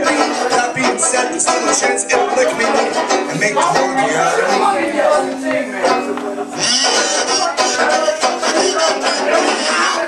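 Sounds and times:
guitar playing: 0.0s - 10.0s
live swing band music: 0.0s - 10.0s
person singing: 0.0s - 10.0s.

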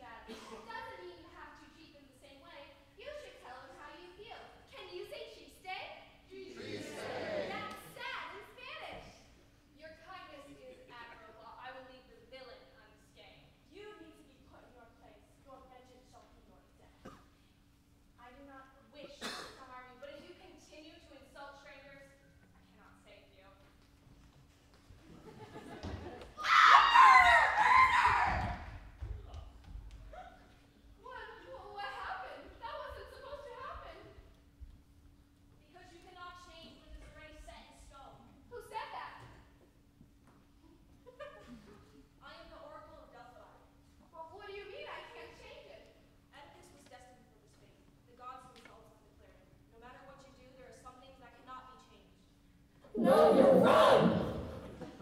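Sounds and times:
group shouting in echoing hall: 6.3s - 7.9s, 26.4s - 28.6s, 52.9s - 54.8s
person screaming: 53.0s - 54.7s.

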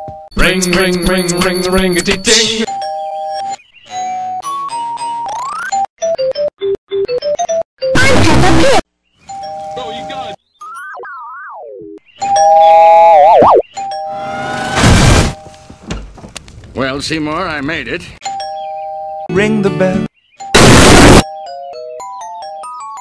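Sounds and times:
loud harsh bursts: 20.6s - 21.2s.

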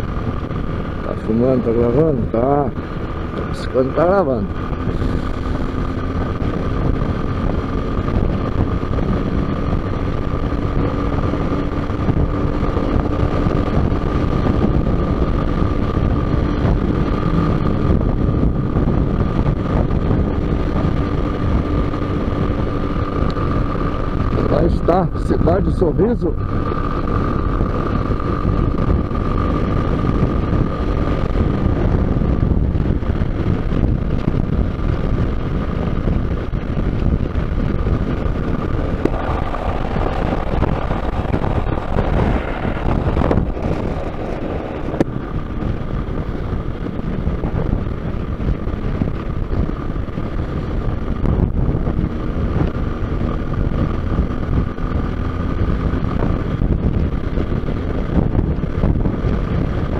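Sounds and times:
motorcycle engine: 0.0s - 59.9s
wind rushing over microphone: 0.0s - 59.9s
thin steady whine: 38.3s - 45.8s.

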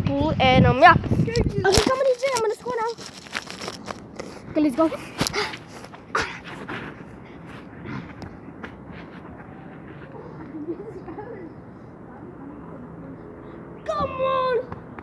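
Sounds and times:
knocks and scuffs on microphone: 5.0s - 10.2s
faint voices of boys playing: 9.4s - 14.8s.

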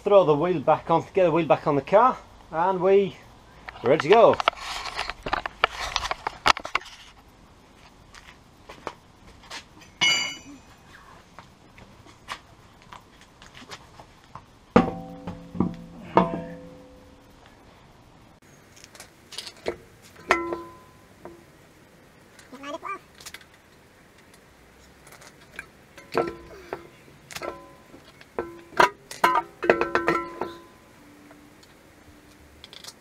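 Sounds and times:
high metallic clink: 9.8s - 10.8s, 14.8s - 17.3s, 27.4s - 30.8s.

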